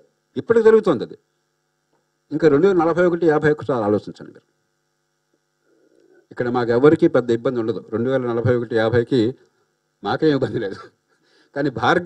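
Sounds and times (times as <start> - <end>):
faint electrical hum: 0.0 - 12.0
man speaking into a microphone: 0.3 - 1.2, 2.3 - 4.5, 6.3 - 12.0.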